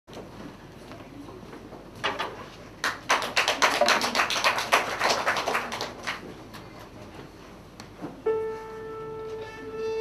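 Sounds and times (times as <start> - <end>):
audience applauding: 2.8 - 6.3.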